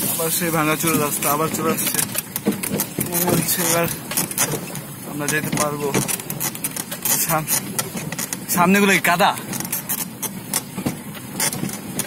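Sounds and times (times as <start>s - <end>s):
rattles and knocks of vehicle body: 0.0s - 12.0s.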